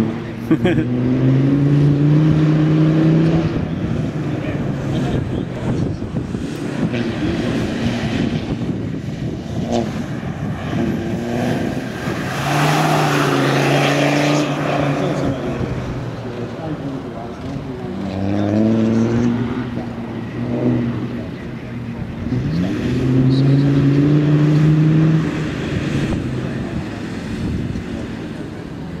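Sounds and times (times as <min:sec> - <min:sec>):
rush of noise: 0:00.0 - 0:29.0.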